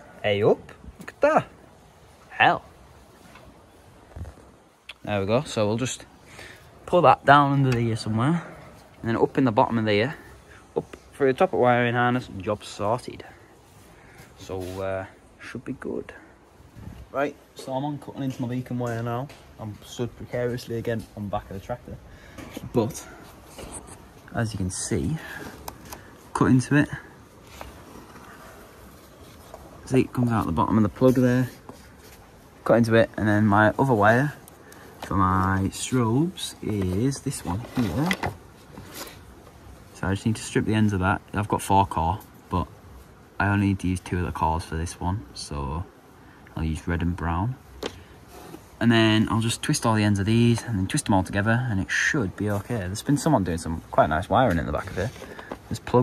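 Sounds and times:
faint background hiss: 0.0 - 56.0.

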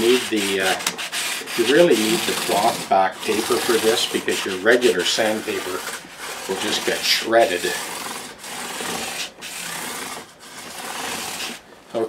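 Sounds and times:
sandpaper rasping on frets: 0.0 - 12.0.

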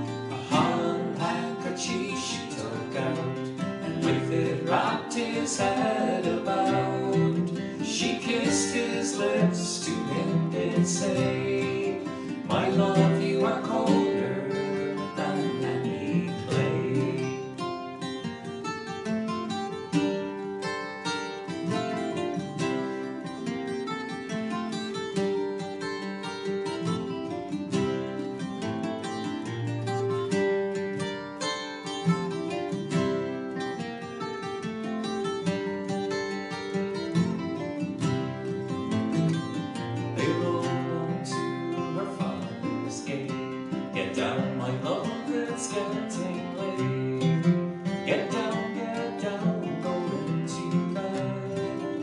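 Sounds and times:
person singing: 0.0 - 18.0, 39.3 - 52.0
acoustic guitar picking: 0.0 - 52.0.

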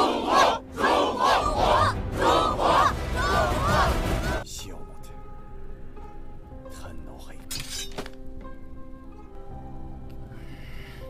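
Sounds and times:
held music chord: 0.0 - 7.2
blade drawn from sheath: 7.5 - 8.2.

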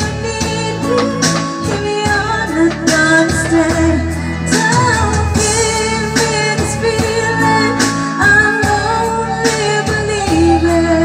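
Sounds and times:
pop ballad backing track: 0.0 - 11.0
woman singing: 0.0 - 11.0.

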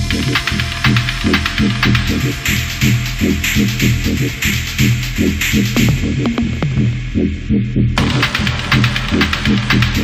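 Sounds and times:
tech house music: 0.0 - 10.0.

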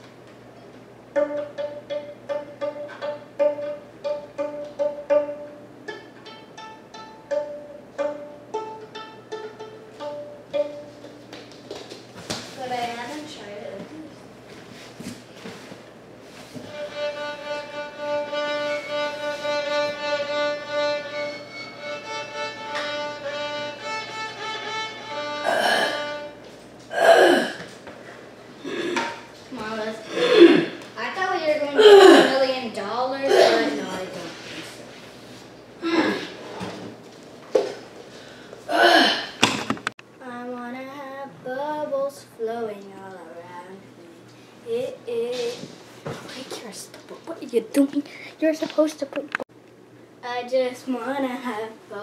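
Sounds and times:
violin playing: 1.1 - 11.2, 16.7 - 26.5
child's voice: 31.0 - 34.2, 40.2 - 43.9, 44.7 - 49.4, 50.2 - 52.0.

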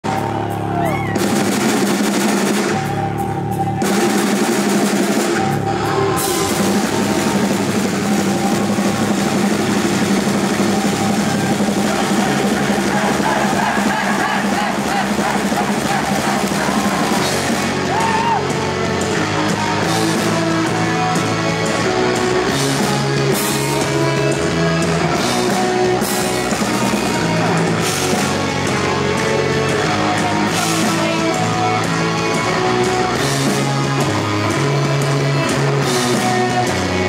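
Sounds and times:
punk rock band playing: 0.0 - 37.0.

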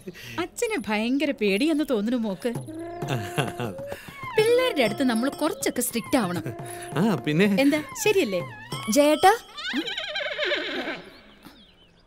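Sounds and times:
horse whinnying: 2.6 - 11.4.

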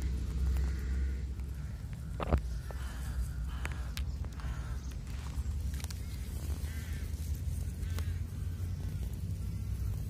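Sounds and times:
faint clicks: 0.0 - 6.8.

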